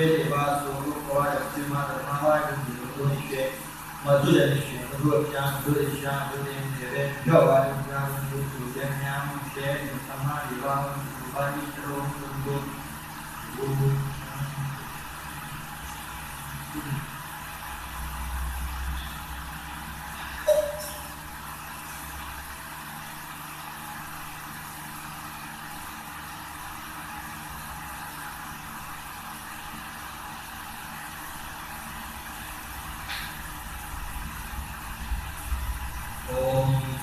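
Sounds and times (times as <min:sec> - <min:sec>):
machine hum and hiss: 0:00.0 - 0:37.0.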